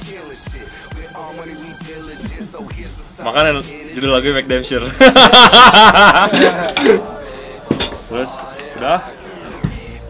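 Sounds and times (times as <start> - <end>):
man laughing heartily: 2.2 - 3.0, 4.8 - 7.0.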